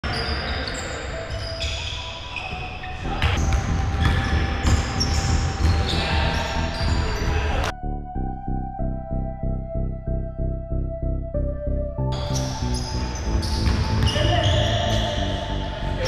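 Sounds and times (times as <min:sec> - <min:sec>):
players' voices echoing: 0:00.0 - 0:07.8, 0:12.2 - 0:16.0
music with a steady pulse: 0:02.8 - 0:16.0
basketball bouncing: 0:03.2 - 0:06.9, 0:13.4 - 0:14.6.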